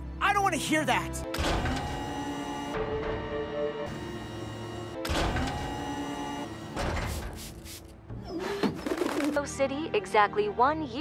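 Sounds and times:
cartoon background music: 0:00.0 - 0:07.1.

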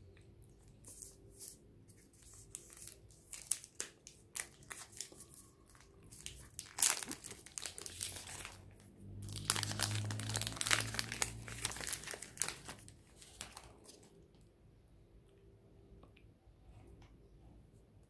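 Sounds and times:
wrapper and foil crinkling: 0:00.8 - 0:14.1.

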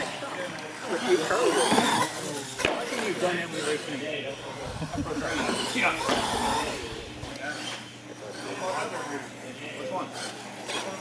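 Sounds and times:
people talking indistinctly: 0:00.0 - 0:11.0
toy truck motor whining: 0:00.8 - 0:11.0.

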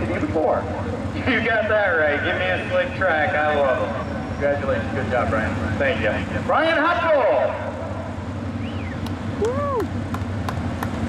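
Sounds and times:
race car engines rumbling: 0:00.0 - 0:11.0
person shouting: 0:09.4 - 0:09.9.

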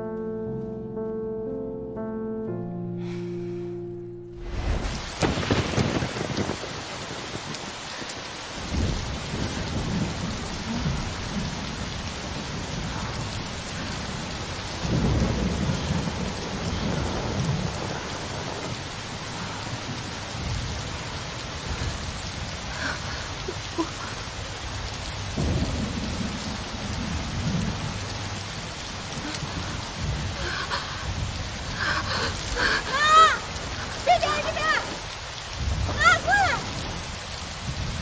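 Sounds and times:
heavy rain pouring: 0:04.3 - 0:38.0
rolling thunder: 0:04.4 - 0:38.0.

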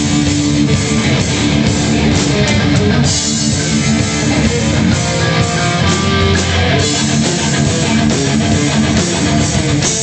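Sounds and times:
distorted electric guitar: 0:00.0 - 0:10.0
heavy metal band playing live: 0:00.0 - 0:10.0.

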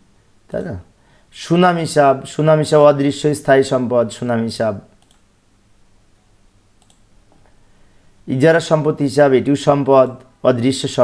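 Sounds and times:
low room hiss: 0:00.0 - 0:11.0
computer mouse clicks: 0:05.0 - 0:05.3, 0:06.8 - 0:07.5.

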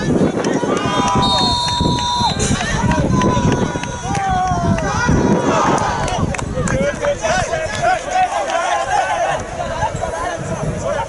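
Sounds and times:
low rumble of crowd: 0:00.0 - 0:11.0
spectators shouting: 0:00.4 - 0:06.3, 0:07.1 - 0:11.0.

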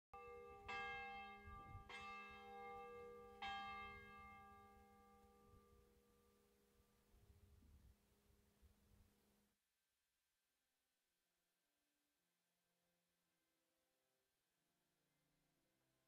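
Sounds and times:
church bell ringing: 0:00.2 - 0:06.5.

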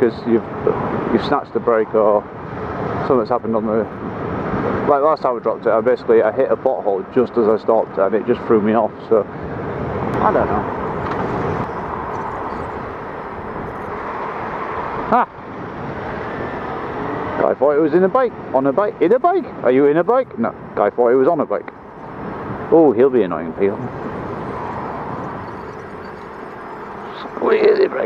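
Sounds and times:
wind noise: 0:09.2 - 0:17.5, 0:20.3 - 0:28.0.

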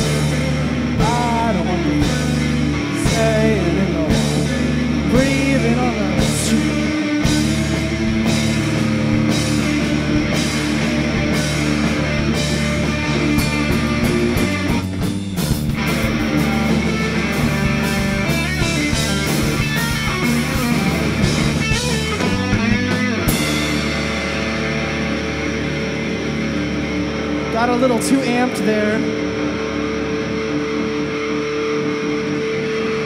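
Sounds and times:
bending guitar notes: 0:00.0 - 0:33.0
drum kit: 0:00.0 - 0:33.0
electric guitar chords: 0:00.0 - 0:33.0.

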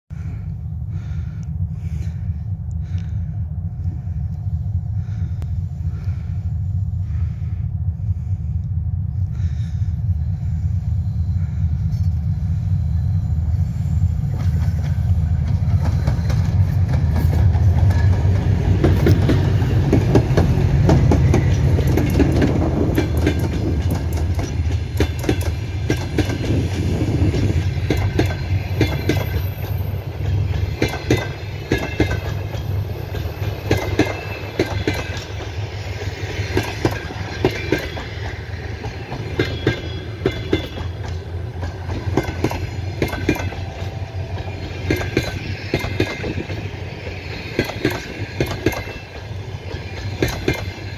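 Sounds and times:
diesel locomotive engines rumbling: 0:00.1 - 0:50.9
train wheels clickety-clack: 0:00.1 - 0:50.9.

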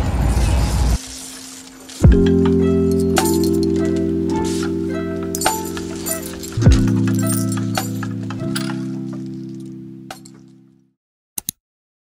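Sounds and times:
background music: 0:01.0 - 0:10.8.

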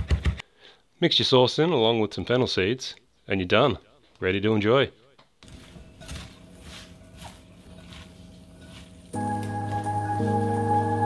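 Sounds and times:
hands tossing coleslaw in bowl: 0:05.4 - 0:09.8.

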